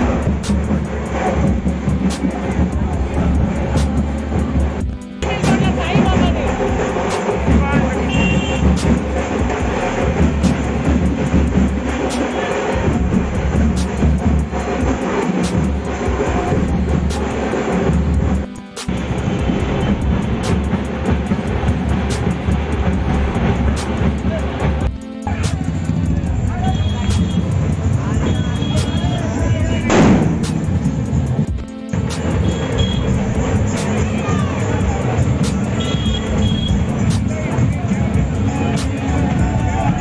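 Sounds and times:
crowd voices: 0.0 - 40.0
procession music with heavy beat: 0.0 - 40.0
sharp cracks: 29.9 - 31.2.

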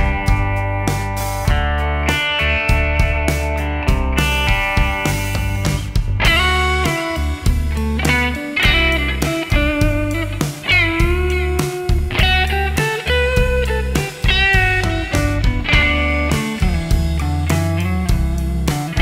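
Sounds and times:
drum kit: 0.0 - 19.0
electric guitar melodic line: 0.0 - 19.0.

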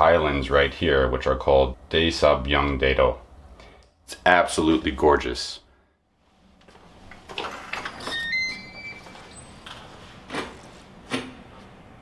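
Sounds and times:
door lock electronic beeps: 7.4 - 9.7.

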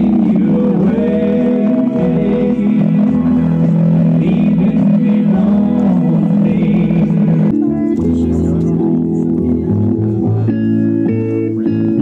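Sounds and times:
person singing: 0.0 - 10.6
guitar: 0.0 - 12.0.

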